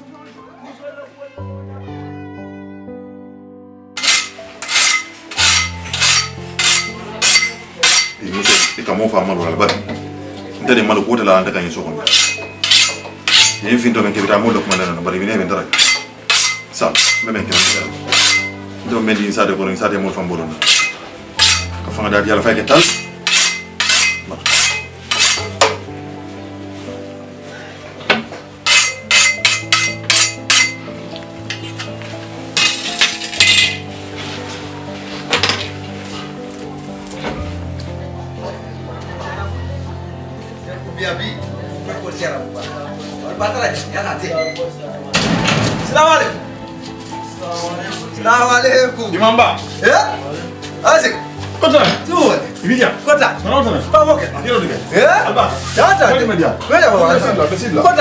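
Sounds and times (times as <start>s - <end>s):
background music: 0.0s - 58.0s
knife blade scraping on sharpener: 4.0s - 8.8s, 12.1s - 13.6s, 15.8s - 18.5s, 20.6s - 21.8s, 22.8s - 25.6s, 28.7s - 30.8s.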